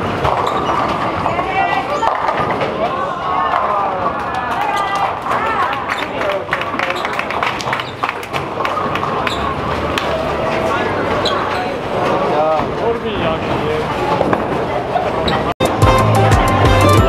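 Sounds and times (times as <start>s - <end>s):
bowling balls and pins clattering: 0.0s - 2.9s
music: 15.6s - 17.0s.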